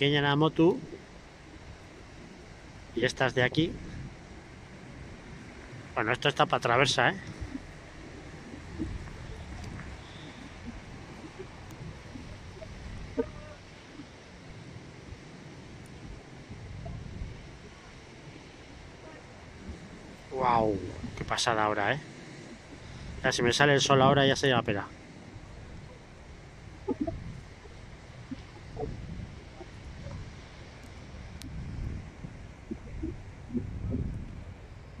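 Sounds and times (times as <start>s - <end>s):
distant breaking surf: 0.0s - 35.0s
gusty wind buffeting microphone: 0.0s - 35.0s.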